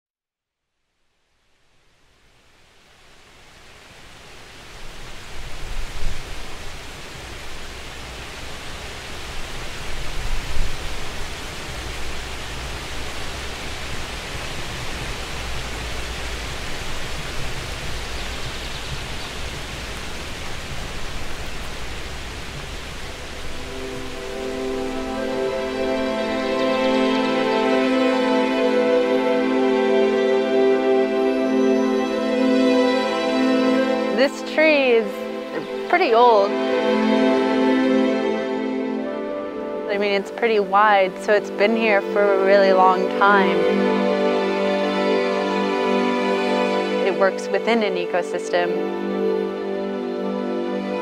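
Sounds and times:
steady rushing noise: 2.2s - 30.2s
low rumbling surges: 3.1s - 28.5s
soft music notes: 5.4s - 51.0s.

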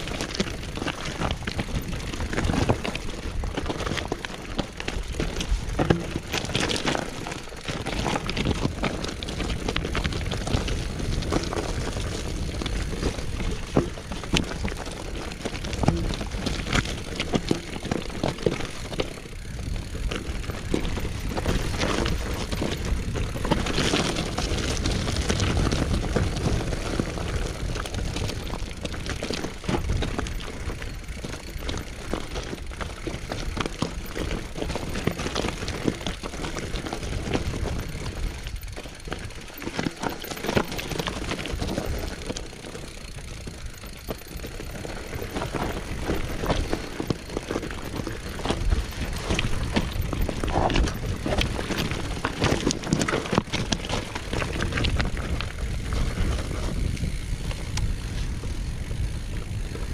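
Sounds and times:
bike rattling: 0.0s - 59.9s
tyres crunching over stones: 0.0s - 59.9s
wind rumble on microphone: 0.0s - 59.9s.

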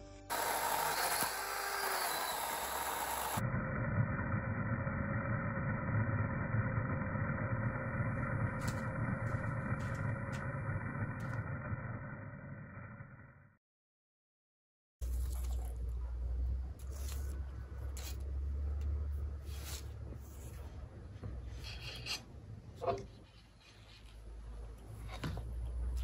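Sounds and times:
electric chainsaw cutting branches: 0.3s - 3.4s.

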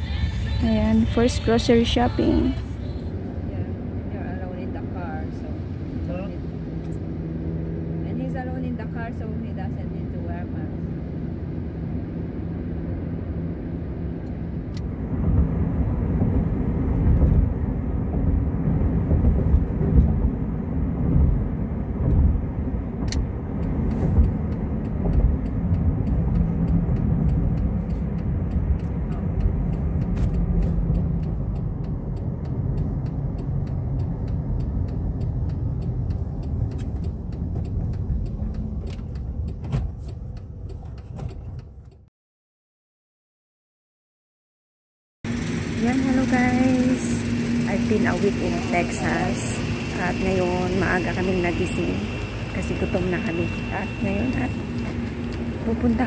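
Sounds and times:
car tyres and engine rumble: 0.0s - 42.1s, 45.3s - 56.0s.

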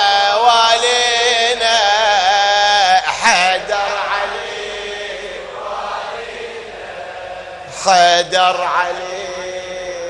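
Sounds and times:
person reciting loudly: 0.0s - 6.2s, 7.6s - 10.0s
congregation chanting: 0.0s - 10.0s.

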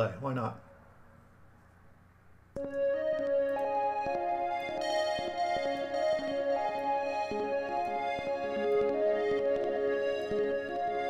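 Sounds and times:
synthesizer melody with reverb: 2.6s - 11.0s.

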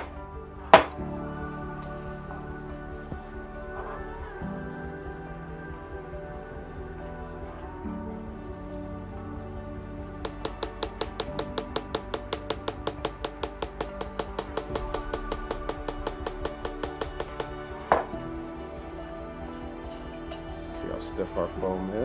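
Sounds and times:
soft background music: 0.0s - 22.0s.

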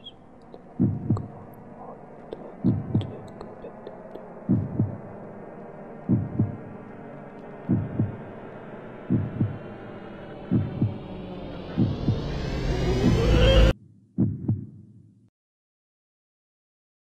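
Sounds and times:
droning hum: 0.0s - 13.8s
heartbeat thumps: 0.6s - 1.6s, 2.4s - 3.5s, 4.4s - 5.2s, 6.0s - 6.7s, 7.6s - 8.2s, 9.0s - 9.7s, 10.4s - 15.0s.

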